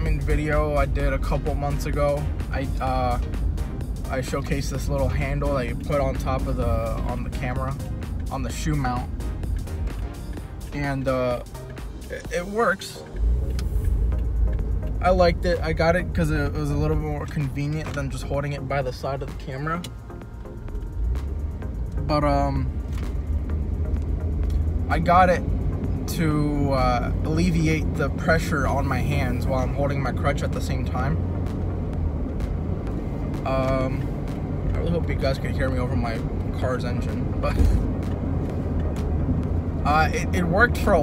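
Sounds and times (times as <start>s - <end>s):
car engine and road noise: 0.0s - 41.0s.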